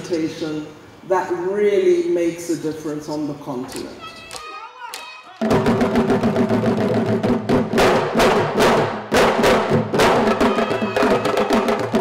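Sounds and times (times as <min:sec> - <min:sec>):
group playing african drums: 0:04.2 - 0:12.0.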